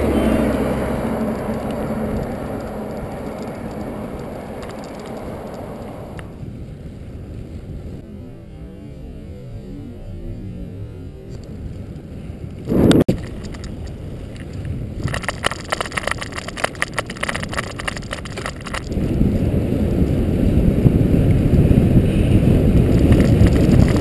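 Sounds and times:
road rumble: 0.0s - 24.0s
wind buffeting microphone: 0.0s - 24.0s.

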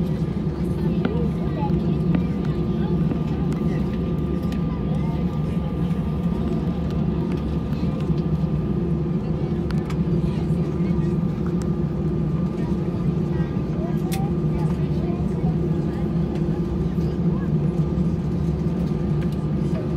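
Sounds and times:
faint passengers' voices: 0.0s - 19.9s
jet engines droning: 0.0s - 19.9s.

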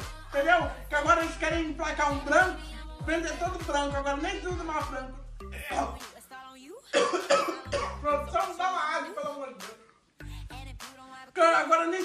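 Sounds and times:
person coughing: 6.9s - 8.1s.

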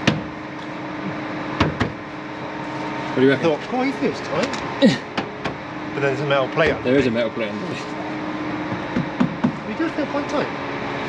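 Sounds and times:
steady low hum: 0.0s - 11.0s
dull knocks: 1.6s - 2.0s, 8.7s - 9.6s.

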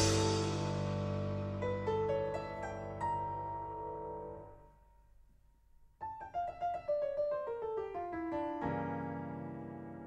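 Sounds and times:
solo piano music: 0.0s - 5.0s, 6.0s - 10.0s.

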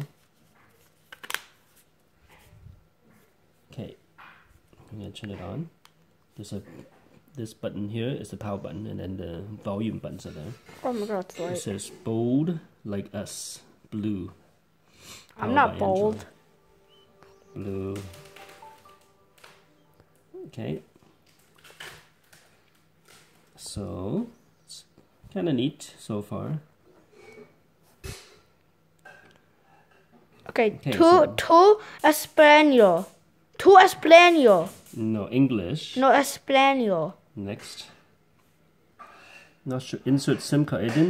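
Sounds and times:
phone startup jingle: 15.5s - 20.0s.

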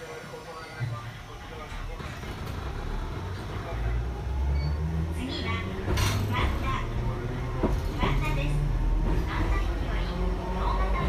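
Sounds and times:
train traction motors growling: 0.0s - 11.0s.

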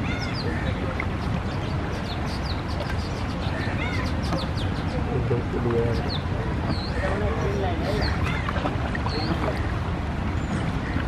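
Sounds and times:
boat engine rumble on rough water: 0.0s - 11.0s.

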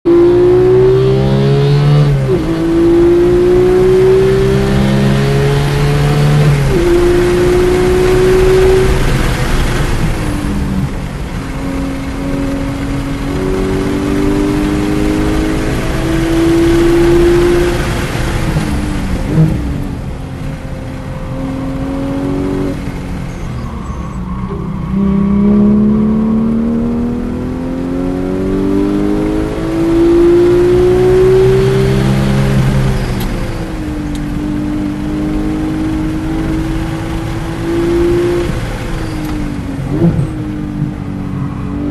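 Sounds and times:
car engine revving: 0.0s - 41.9s.

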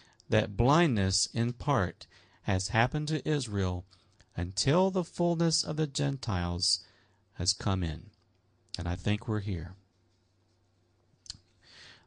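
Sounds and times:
person speaking: 0.0s - 10.6s
soft in-breath: 2.1s - 2.4s, 6.8s - 7.3s, 11.6s - 12.0s.

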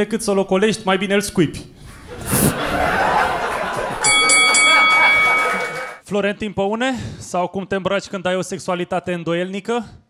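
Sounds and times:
audience laughing: 2.0s - 6.0s
bell ringing: 4.0s - 6.0s.

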